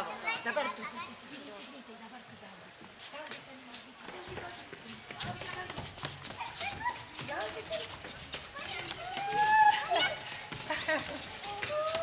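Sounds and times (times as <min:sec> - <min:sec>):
woman and children calling: 0:04.2 - 0:12.0.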